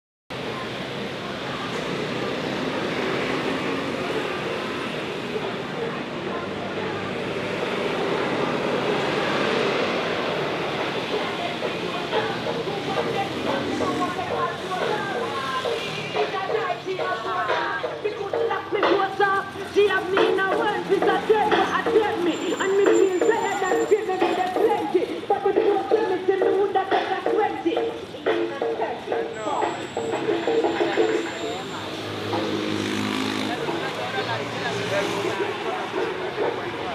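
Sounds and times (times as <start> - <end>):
buses driving past: 0.4 - 36.9
vehicle engine passing by: 0.8 - 5.6, 6.3 - 16.4, 31.6 - 36.9
people talking: 5.2 - 7.5, 33.4 - 36.9.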